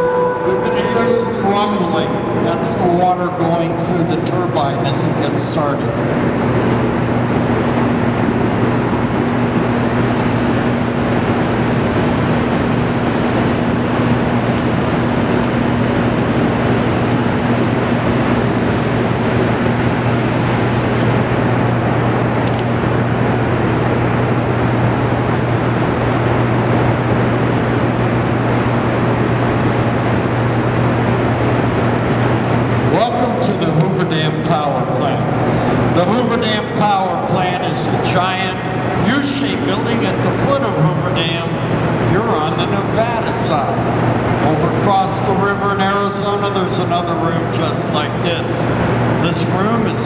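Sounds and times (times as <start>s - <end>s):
faint higher tone: 0.0s - 3.3s
generator machinery hum: 0.0s - 50.0s.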